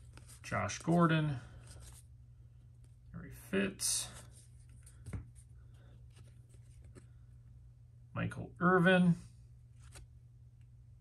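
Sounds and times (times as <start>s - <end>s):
trading cards flipped by hand: 0.0s - 2.0s, 4.2s - 7.1s, 9.8s - 10.1s.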